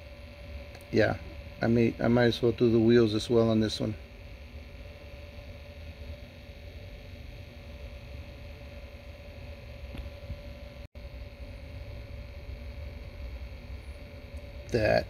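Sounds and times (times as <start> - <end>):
faint motor whine: 0.0 - 15.0
turntable motor hum: 0.0 - 15.0.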